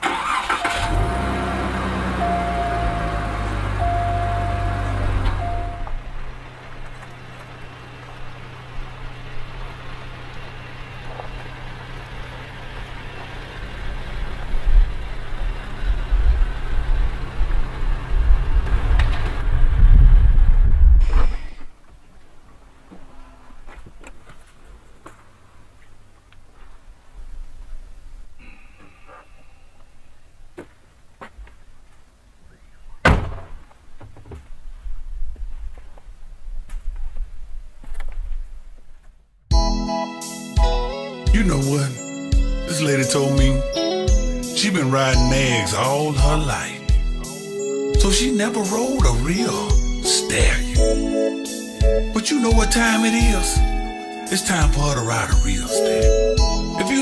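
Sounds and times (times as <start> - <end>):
car engine idling: 0.0 - 19.5, 41.3 - 57.0
car engine starting and revving: 0.0 - 21.0
low engine rumble of car driving: 0.0 - 21.3, 40.6 - 57.0
repeated electronic chime: 0.6 - 5.9, 41.4 - 46.5, 47.4 - 57.0.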